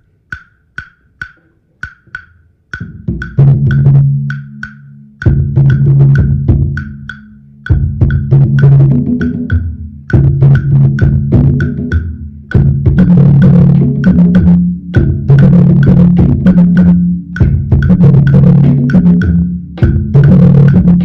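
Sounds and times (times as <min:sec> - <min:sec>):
wood block clicks: 0:00.0 - 0:12.6, 0:14.0 - 0:21.0
drum ensemble playing: 0:00.3 - 0:21.0
low bass notes: 0:00.5 - 0:21.0.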